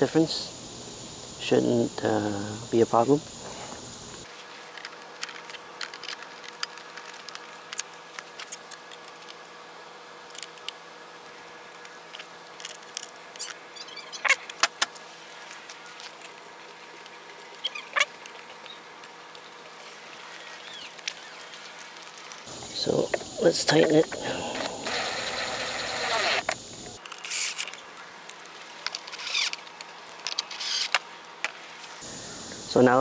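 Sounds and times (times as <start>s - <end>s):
faint hum: 0.0s - 33.0s.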